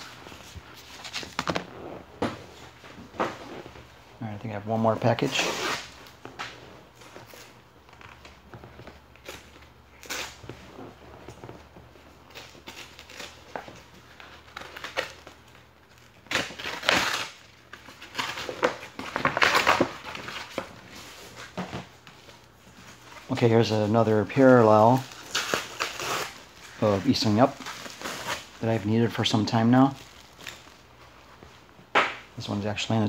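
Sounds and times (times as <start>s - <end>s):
crinkling of paper and plastic wrapping: 11.2s - 31.7s.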